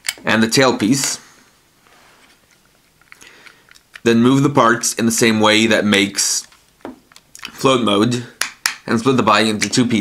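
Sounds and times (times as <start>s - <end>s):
plastic parts clicking together: 0.0s - 0.3s, 2.5s - 4.1s.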